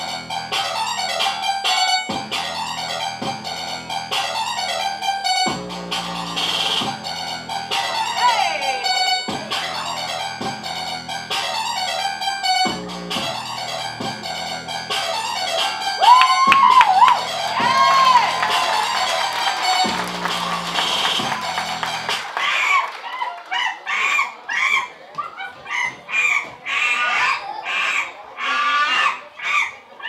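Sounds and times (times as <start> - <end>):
recorded music: 0.0 - 23.0.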